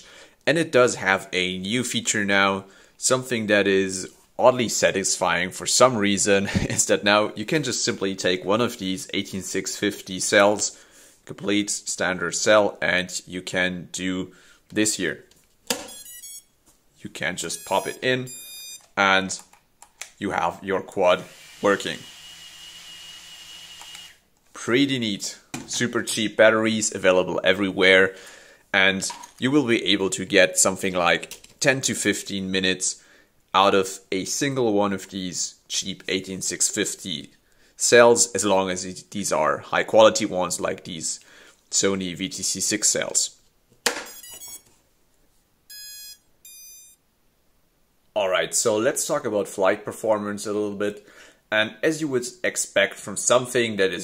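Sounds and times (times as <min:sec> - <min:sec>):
electronic beeps: 0:15.9 - 0:16.5, 0:17.5 - 0:18.9, 0:44.1 - 0:44.7, 0:45.7 - 0:47.0.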